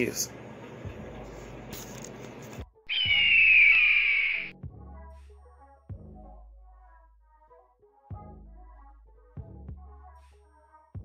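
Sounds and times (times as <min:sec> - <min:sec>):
whistle-like tone gliding downward: 0:02.9 - 0:04.5.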